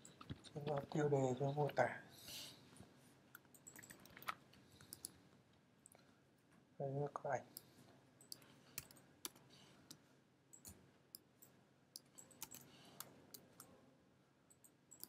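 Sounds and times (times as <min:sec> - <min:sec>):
keyboard keys clicking: 0:12.0 - 0:12.7.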